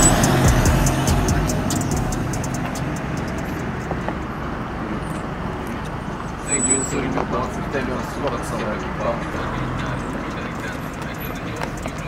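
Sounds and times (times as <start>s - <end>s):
car engine rumble: 0.0s - 12.0s
people's voices: 5.8s - 12.0s.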